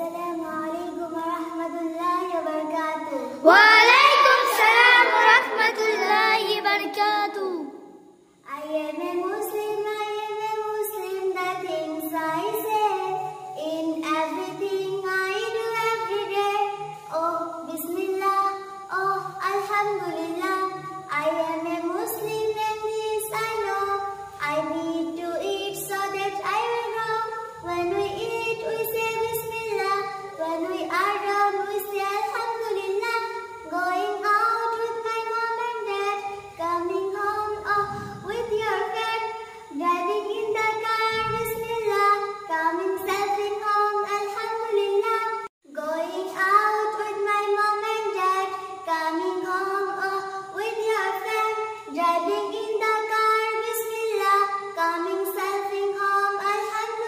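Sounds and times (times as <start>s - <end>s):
girl singing: 0.0s - 57.0s.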